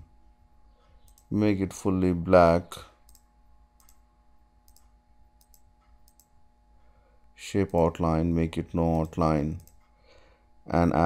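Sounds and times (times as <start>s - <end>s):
faint steady hum: 0.0s - 11.0s
computer mouse clicks: 1.0s - 1.3s, 3.1s - 4.0s, 4.6s - 6.4s, 8.9s - 9.9s.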